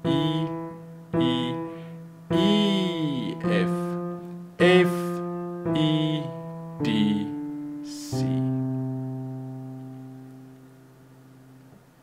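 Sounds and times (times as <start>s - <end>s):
piano notes: 0.0s - 12.0s.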